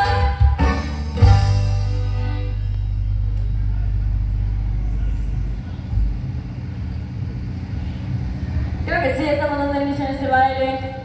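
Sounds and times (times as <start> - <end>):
sound system rumble and hum: 0.0 - 11.0.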